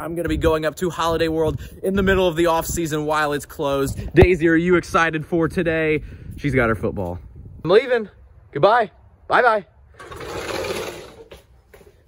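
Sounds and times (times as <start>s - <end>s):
rapid rattling scraping: 10.0s - 11.6s.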